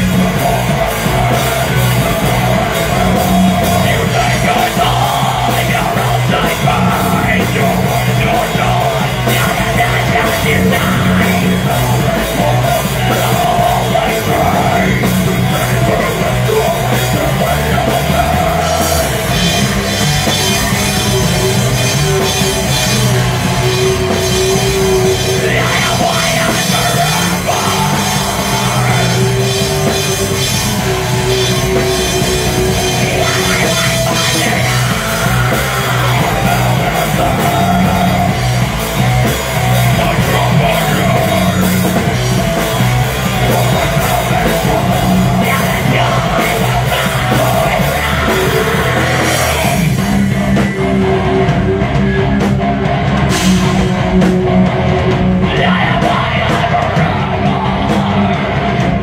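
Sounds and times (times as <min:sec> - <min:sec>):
drums: 0:00.0 - 0:59.0
electric guitars: 0:00.0 - 0:59.0
live rock band playing: 0:00.0 - 0:59.0.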